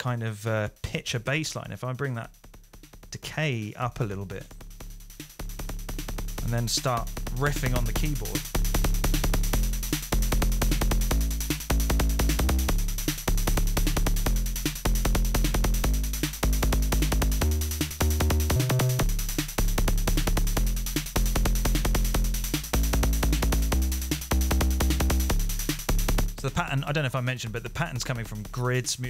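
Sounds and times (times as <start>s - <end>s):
synthesizer kick bass pattern: 2.0s - 29.0s.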